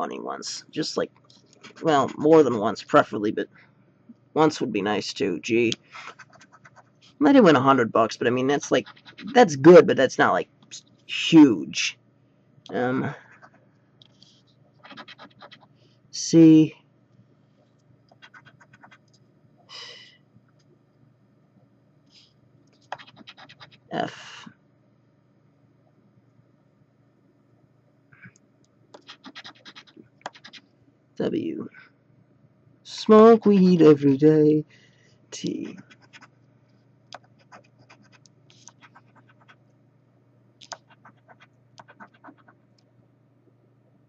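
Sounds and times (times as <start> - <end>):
lottery ticket being scratched: 1.6 - 2.7, 5.5 - 10.3, 14.8 - 15.7, 18.1 - 19.1, 22.9 - 23.9, 29.0 - 30.6, 40.7 - 42.6.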